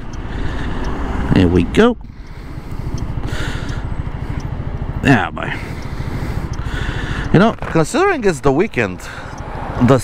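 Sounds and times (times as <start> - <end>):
scooter engine under throttle: 2.1 - 8.4.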